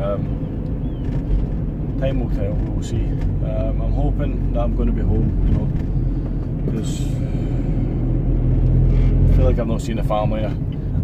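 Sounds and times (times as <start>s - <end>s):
van engine and road noise: 0.0s - 11.0s.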